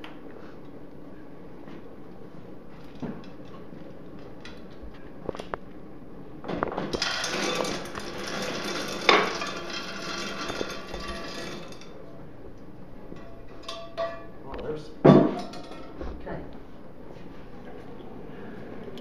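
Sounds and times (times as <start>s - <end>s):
bullets clattering into steel pot: 13.2s - 14.3s, 15.3s - 16.0s.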